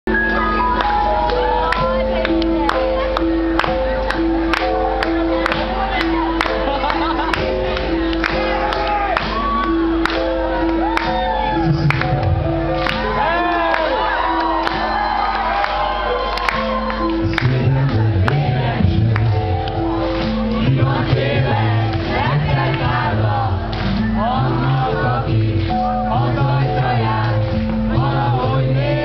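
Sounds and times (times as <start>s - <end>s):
audience shouting and cheering: 0.1s - 29.0s.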